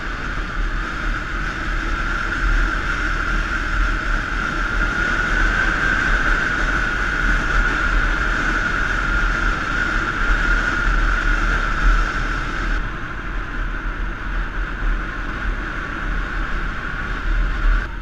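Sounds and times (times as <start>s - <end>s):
motorbike engine drone: 0.0s - 18.0s
steady whine: 0.0s - 18.0s
wind rumble on microphone: 0.0s - 18.0s.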